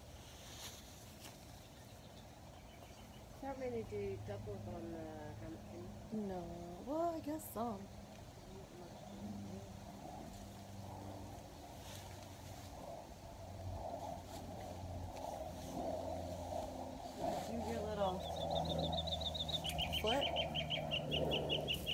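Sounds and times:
low steady hum: 0.0 - 21.9
bird trilling high chirps: 18.2 - 21.9.

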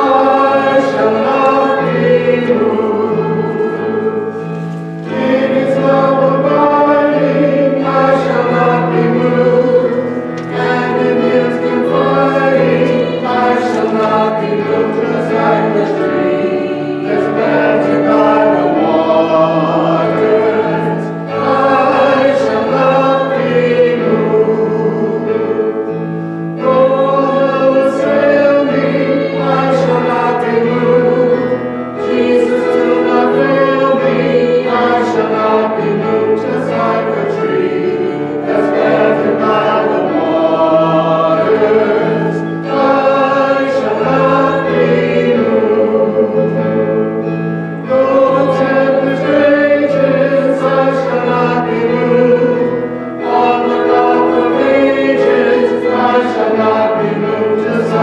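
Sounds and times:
church choir singing: 0.0 - 58.0.

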